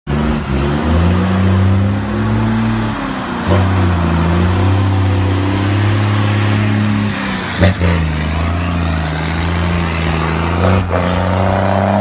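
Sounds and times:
diesel truck engine revving: 0:00.1 - 0:12.0.

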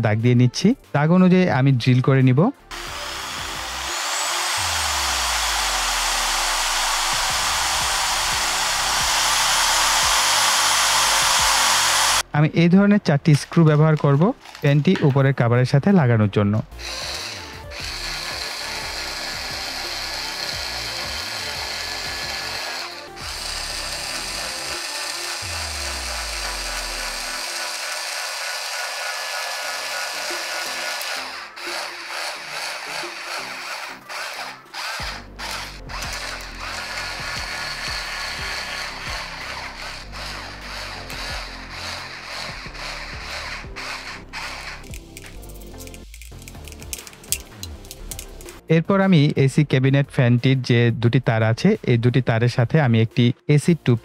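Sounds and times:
electric screwdriver driving screws: 0:02.7 - 0:12.2, 0:14.0 - 0:14.7, 0:16.7 - 0:48.6.

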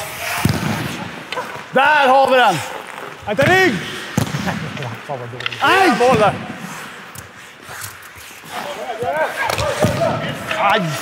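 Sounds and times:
hockey sticks hitting ball on ice: 0:00.0 - 0:06.6, 0:09.0 - 0:11.0.

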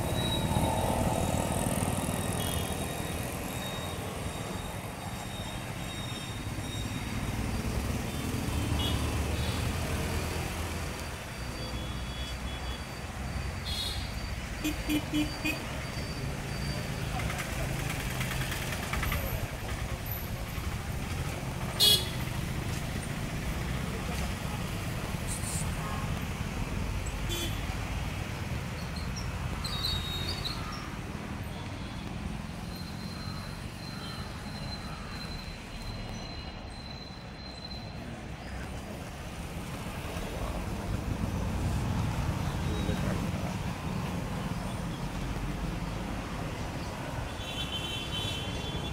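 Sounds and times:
low rumble of passing vehicles: 0:00.0 - 0:47.4
vehicle horn toots: 0:13.6 - 0:15.6, 0:21.8 - 0:22.2, 0:27.3 - 0:27.6.

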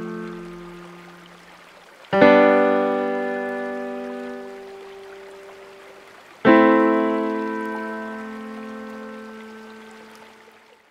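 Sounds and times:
piano chord ringing: 0:00.0 - 0:01.3, 0:02.2 - 0:05.5, 0:06.5 - 0:10.1
flowing stream water: 0:00.0 - 0:10.9.

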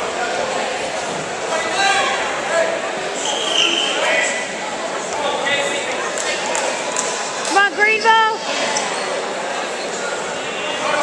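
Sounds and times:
murmur of voices echoing: 0:00.0 - 0:11.0.

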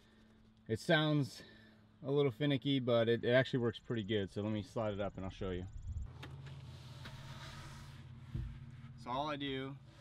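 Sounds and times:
board scraping on floor: 0:06.3 - 0:09.1
board thumping against frame: 0:08.2 - 0:08.7.

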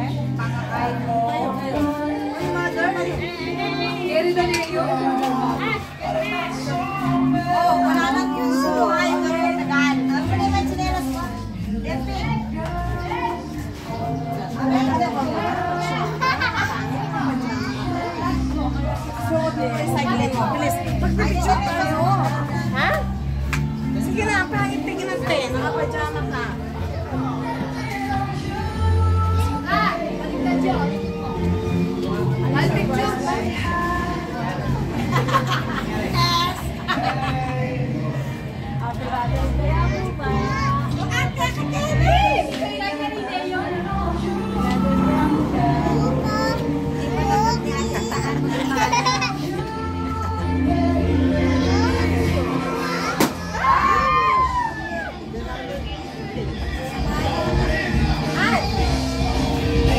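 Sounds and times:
background music: 0:00.0 - 0:59.9
children chattering excitedly: 0:00.0 - 0:59.9.

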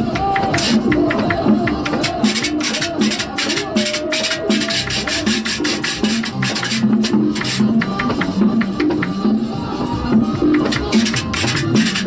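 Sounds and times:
drum and bass groove: 0:00.0 - 0:12.0
metal scraper rasping: 0:02.0 - 0:07.6, 0:10.7 - 0:12.0.

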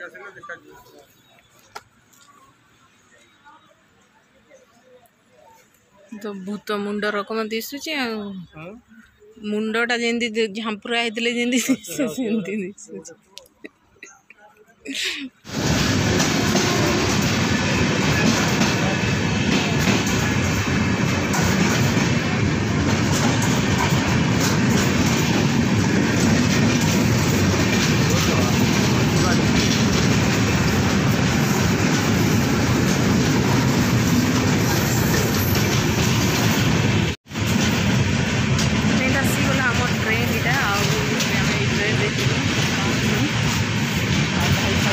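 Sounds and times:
train wheels rumbling on rails: 0:15.4 - 0:44.9.

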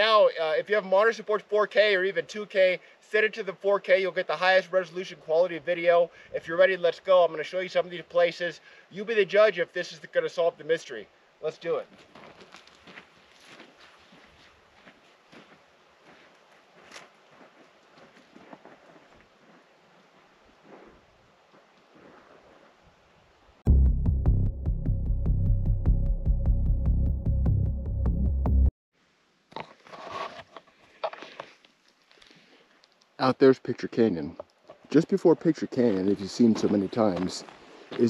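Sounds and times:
footsteps on rocky gravel: 0:12.0 - 0:22.3, 0:34.7 - 0:38.0.

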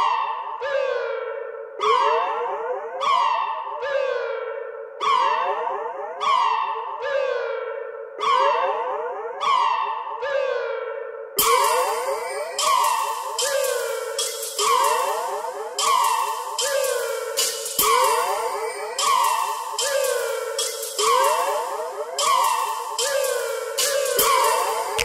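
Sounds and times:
echoing synthesizer notes: 0:00.0 - 0:25.0
electronic beat with percussion: 0:11.4 - 0:25.0.

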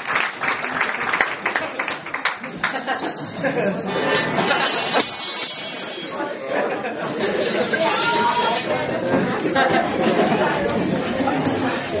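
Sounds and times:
hubbub of mixed chatter: 0:01.4 - 0:12.0.

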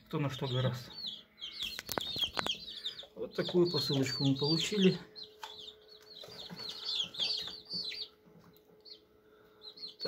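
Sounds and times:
birds cheeping: 0:00.0 - 0:10.0
faint steady hum: 0:04.0 - 0:10.0.

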